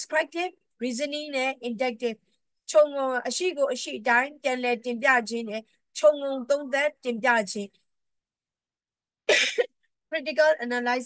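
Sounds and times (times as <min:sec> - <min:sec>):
woman coughing: 0:09.3 - 0:09.8.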